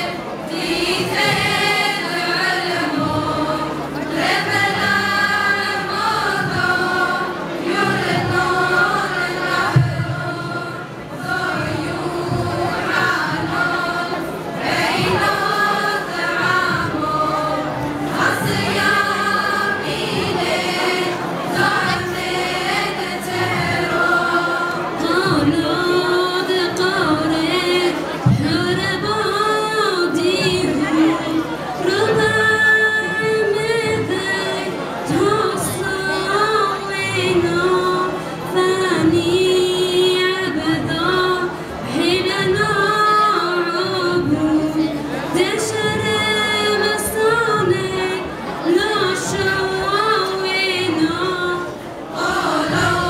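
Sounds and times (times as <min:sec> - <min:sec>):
choir singing long held notes: 0:00.0 - 0:28.3, 0:40.4 - 0:53.0.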